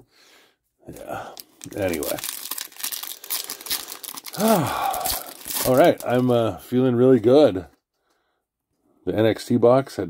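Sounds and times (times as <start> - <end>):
foil wrapper crinkling: 0.9 - 6.3.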